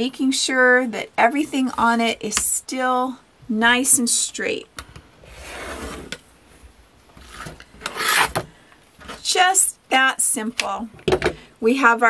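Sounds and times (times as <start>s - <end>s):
ruler scraping across mat: 5.2s - 6.2s, 7.2s - 8.4s.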